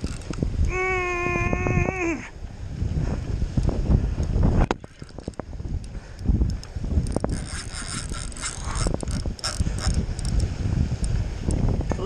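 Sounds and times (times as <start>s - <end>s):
wind buffeting microphone: 0.0s - 12.0s
fishing reel clicking: 5.2s - 10.5s.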